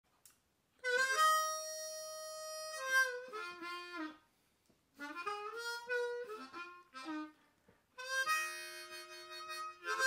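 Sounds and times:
harmonica playing: 0.8s - 4.2s, 5.0s - 7.4s, 8.0s - 10.0s.

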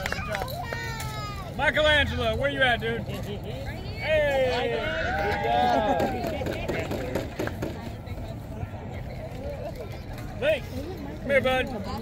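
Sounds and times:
children and adults talking: 0.0s - 12.0s.

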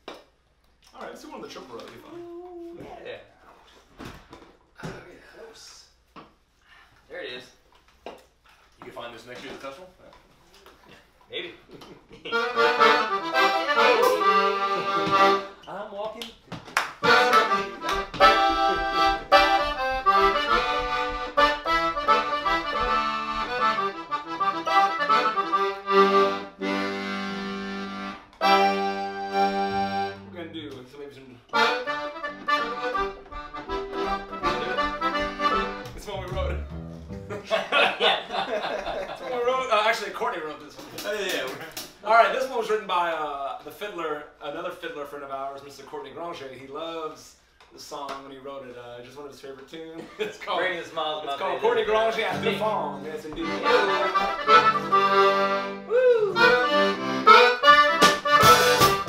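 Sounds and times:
button accordion playing: 12.3s - 15.6s, 17.0s - 30.3s, 31.5s - 37.3s, 52.3s - 59.0s.

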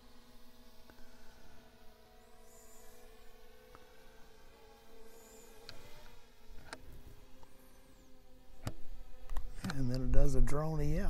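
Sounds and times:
drone propellers whining: 0.0s - 11.0s.

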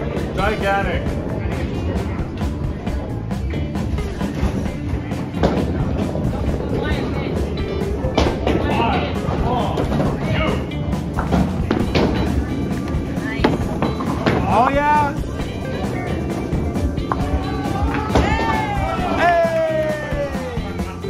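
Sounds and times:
bowling balls and pins clattering: 0.0s - 19.2s
music: 0.0s - 21.0s.

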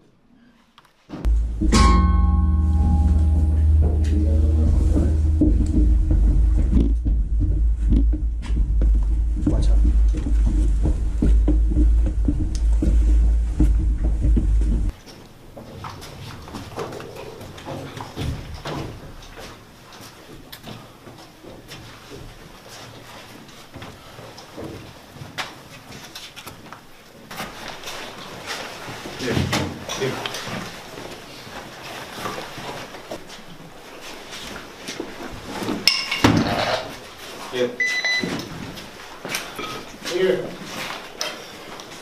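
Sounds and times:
sharp knock: 1.3s - 14.9s.

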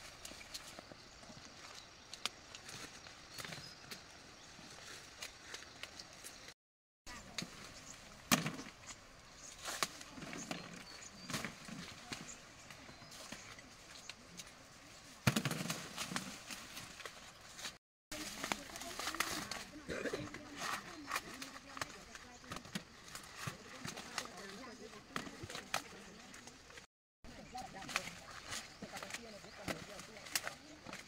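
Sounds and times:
dry corn stalks rustling: 0.0s - 31.0s
corn ears snapping off: 8.2s - 8.8s, 15.2s - 17.1s, 27.9s - 31.0s.

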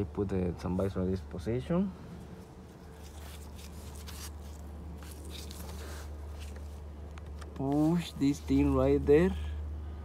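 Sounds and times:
steady low hum: 0.0s - 10.0s
gloved hand rustling: 2.2s - 9.4s.

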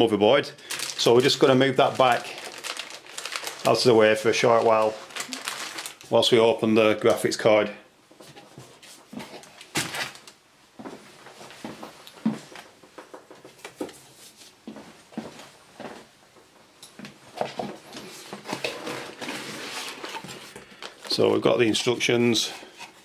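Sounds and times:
cardboard and packaging rustling: 0.6s - 6.3s, 8.2s - 10.4s, 17.3s - 23.0s.

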